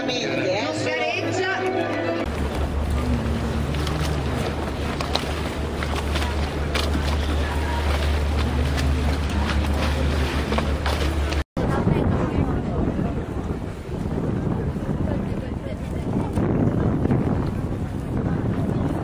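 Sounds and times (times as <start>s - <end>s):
wind buffeting microphone: 2.2s - 19.0s.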